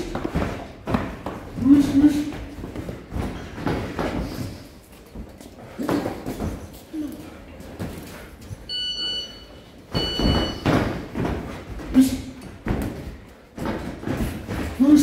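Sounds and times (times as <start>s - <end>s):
footwork on ring canvas: 0.0s - 15.0s.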